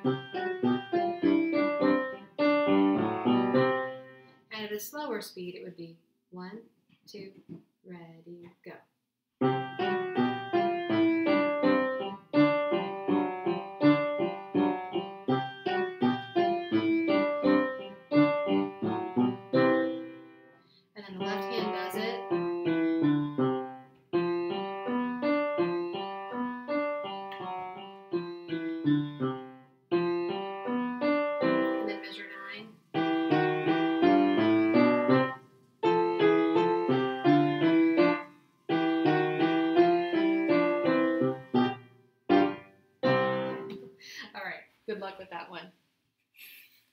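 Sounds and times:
upright piano playing rag: 0.0s - 4.2s, 9.4s - 20.4s, 21.2s - 43.9s.

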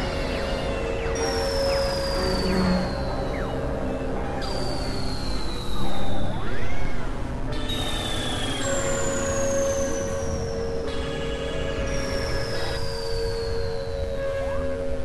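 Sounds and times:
electronic drone music: 0.9s - 5.0s.

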